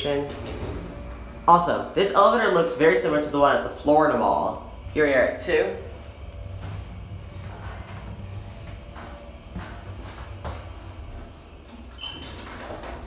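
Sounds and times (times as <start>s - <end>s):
elevator doors sliding open: 0.0s - 4.0s, 5.8s - 13.0s
steady low hum: 0.0s - 13.0s.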